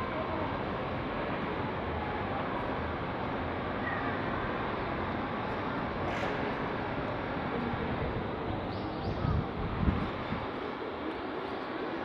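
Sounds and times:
city traffic noise: 0:00.0 - 0:12.0.

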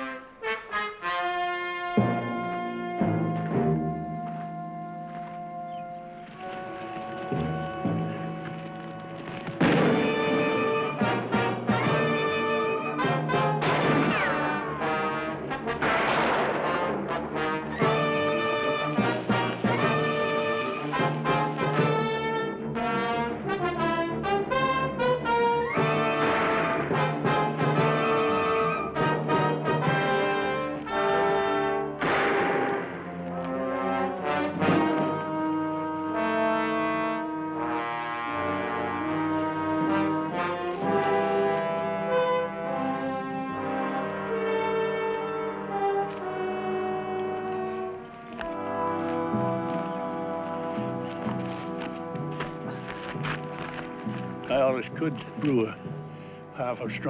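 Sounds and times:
orchestral music with brass: 0:00.0 - 0:57.0.

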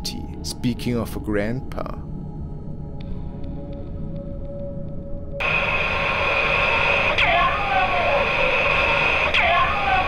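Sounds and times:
steady high-pitched tone: 0:04.0 - 0:10.0
static hiss: 0:05.4 - 0:10.0
distorted voice: 0:06.8 - 0:10.0.

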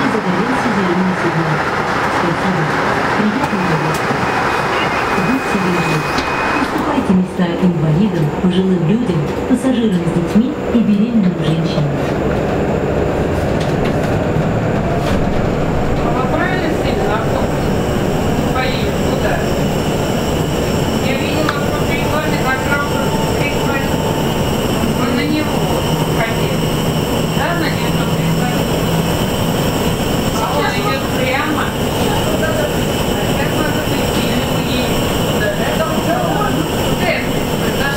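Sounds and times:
low hum: 0:02.3 - 0:37.9
road and tyre noise: 0:09.2 - 0:37.9.

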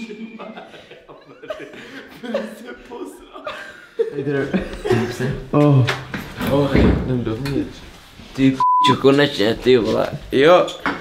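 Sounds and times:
young man laughing: 0:00.0 - 0:05.5.

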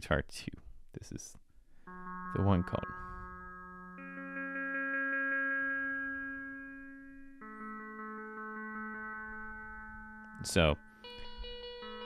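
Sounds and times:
guitar notes: 0:01.9 - 0:12.0.

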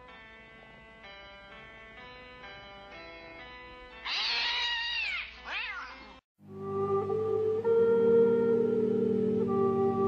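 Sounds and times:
cat meowing: 0:04.0 - 0:06.1.

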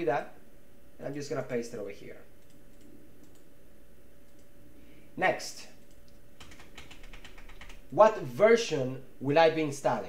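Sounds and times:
computer keyboard key taps: 0:06.0 - 0:07.8.

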